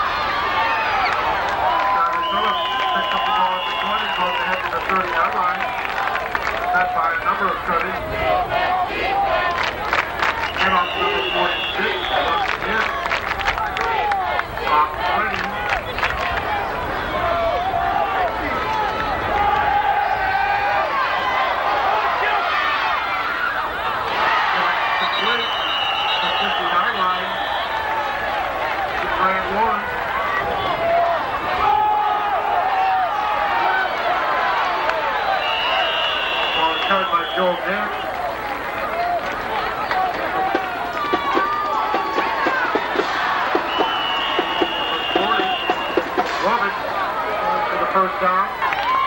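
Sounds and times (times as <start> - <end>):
crowd clapping and cheering: 0.0 - 49.0
crowd voices calling out: 0.0 - 49.0.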